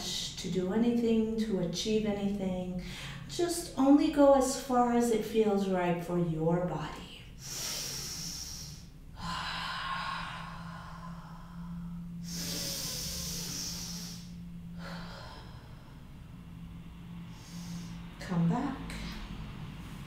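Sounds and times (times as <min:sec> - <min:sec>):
faint low hum: 0:00.0 - 0:20.0
woman breathing slowly: 0:02.8 - 0:03.3, 0:07.2 - 0:18.2.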